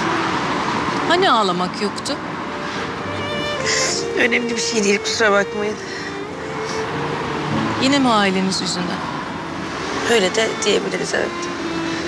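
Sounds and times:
road traffic noise: 0:00.0 - 0:12.0
woman speaking: 0:07.8 - 0:09.1, 0:10.0 - 0:11.5.

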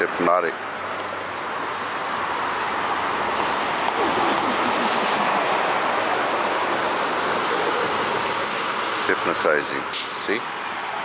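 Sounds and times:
bus driving past: 0:00.6 - 0:11.0.

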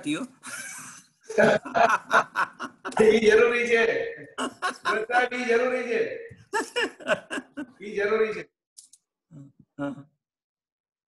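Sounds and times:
man laughing: 0:00.4 - 0:03.3, 0:04.3 - 0:05.6, 0:06.5 - 0:08.0.

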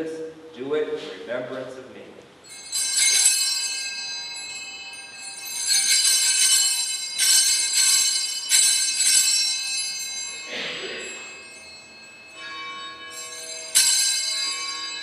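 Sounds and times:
hand bells ringing: 0:02.4 - 0:15.0.

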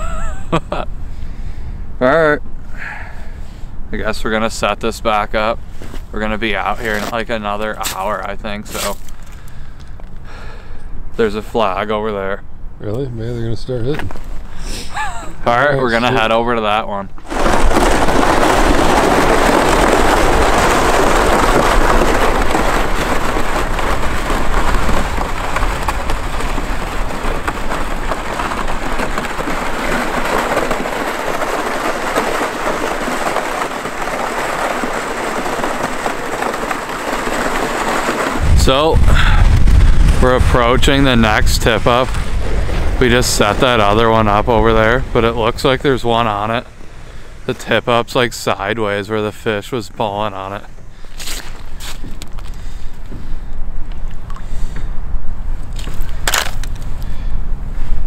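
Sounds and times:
plastic sled scraping over ice: 0:04.0 - 0:09.5, 0:15.5 - 0:54.8, 0:55.6 - 0:58.0
short crunch: 0:05.6 - 0:10.9, 0:50.6 - 0:54.9, 0:55.6 - 0:57.3
wind rumbling on microphone: 0:17.1 - 0:48.1, 0:50.5 - 0:58.0.

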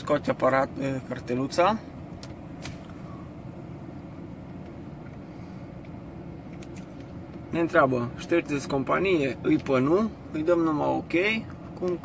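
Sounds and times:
truck cab hum: 0:00.0 - 0:12.0.

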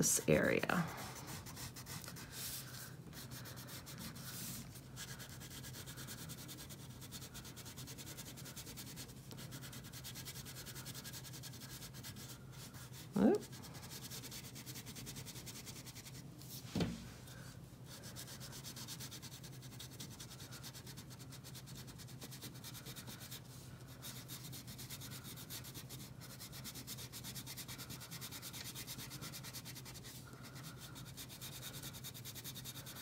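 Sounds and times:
wax crayon rubbing on paper: 0:00.0 - 0:16.2, 0:17.9 - 0:33.0.

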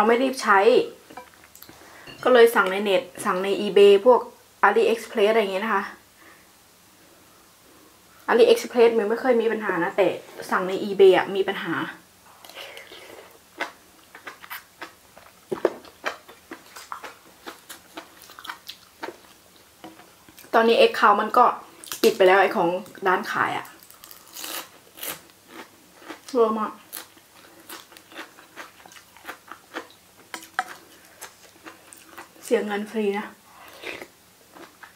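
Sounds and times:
soft chewing: 0:01.1 - 0:02.2, 0:12.3 - 0:20.6, 0:23.6 - 0:32.5, 0:33.6 - 0:34.9.

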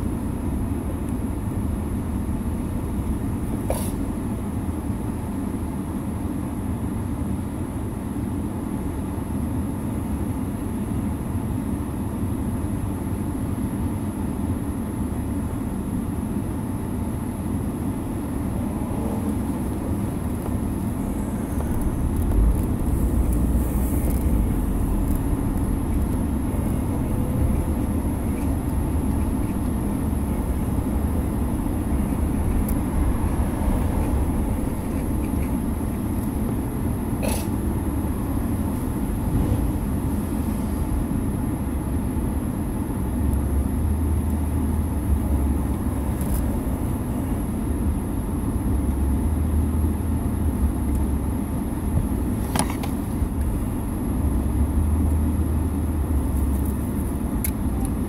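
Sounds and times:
car cabin rumble: 0:17.5 - 0:58.0.

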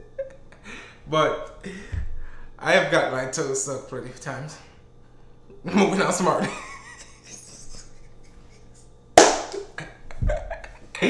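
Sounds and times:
hands slapping: 0:09.2 - 0:09.8.

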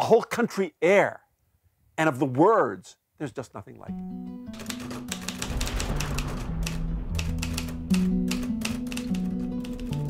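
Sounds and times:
typewriter keys striking: 0:04.5 - 0:10.0.

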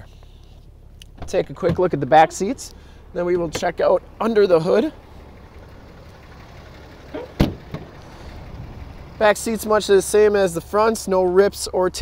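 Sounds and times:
truck door thump: 0:07.2 - 0:07.9.

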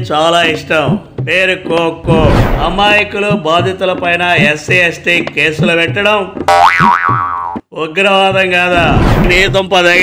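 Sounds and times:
cartoon boing sound effect: 0:06.5 - 0:07.6.

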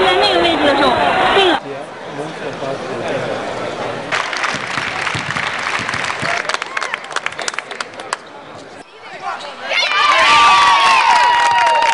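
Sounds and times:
crowd applauding: 0:04.1 - 0:08.3, 0:10.1 - 0:11.9.

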